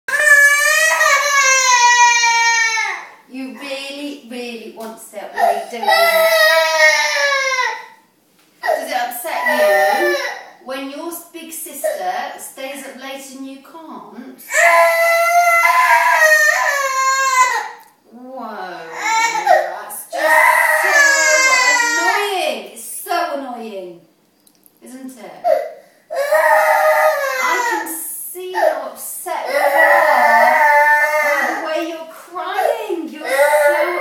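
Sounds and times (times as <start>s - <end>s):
young girl crying: 8.6s - 10.6s, 25.4s - 28.0s, 29.5s - 31.8s, 32.6s - 34.0s.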